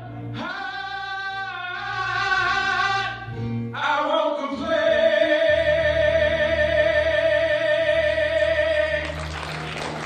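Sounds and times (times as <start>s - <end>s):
man singing gospel into microphone: 0.0s - 9.4s.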